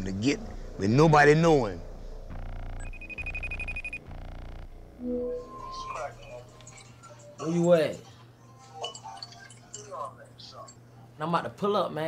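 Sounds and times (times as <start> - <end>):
steady high tone: 0.0 - 6.7
phone ringing: 2.4 - 7.3.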